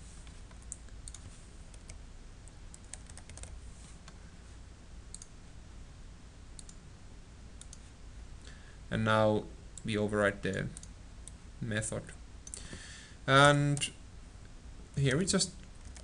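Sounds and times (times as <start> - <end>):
steady low hum: 0.0 - 16.0
keyboard keys clicking: 2.8 - 3.5.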